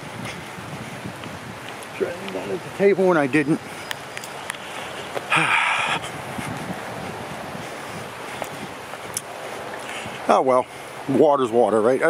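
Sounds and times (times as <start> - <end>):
wind on microphone: 0.0 - 11.1
rain: 0.0 - 12.0.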